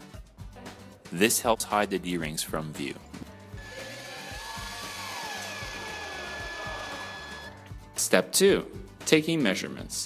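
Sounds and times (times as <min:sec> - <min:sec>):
cordless drill whirring: 0:03.6 - 0:07.5.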